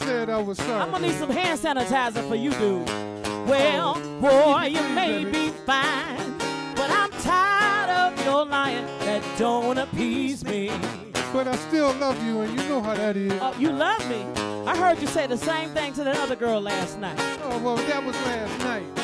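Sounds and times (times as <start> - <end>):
acoustic guitar: 0.0 - 19.0
woman singing with vibrato: 0.8 - 10.9, 13.4 - 17.3.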